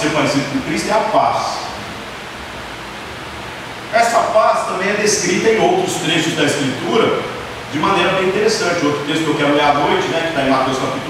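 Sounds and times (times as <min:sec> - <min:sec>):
man talking: 0:00.0 - 0:01.8, 0:03.9 - 0:11.0
room noise hiss: 0:00.0 - 0:11.0.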